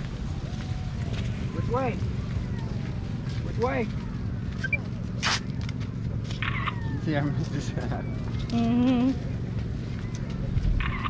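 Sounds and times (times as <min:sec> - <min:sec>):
dry cornstalks crackling and rustling: 0:00.0 - 0:08.6
steady low rumble: 0:00.0 - 0:11.0.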